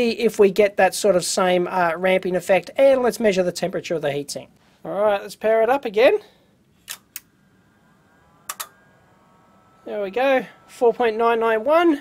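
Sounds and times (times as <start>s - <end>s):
faint steady electronic whine: 0.0s - 12.0s
relay double click: 6.8s - 7.4s, 8.5s - 8.7s.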